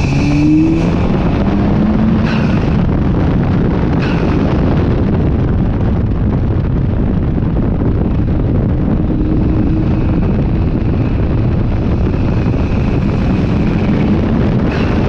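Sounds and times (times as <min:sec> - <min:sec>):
car engine under load: 0:00.0 - 0:15.0
wind noise on microphone: 0:00.0 - 0:15.0.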